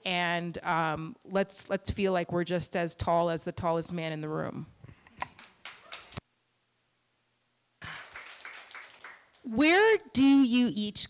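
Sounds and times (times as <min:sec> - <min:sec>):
audience applause: 0:07.8 - 0:09.4.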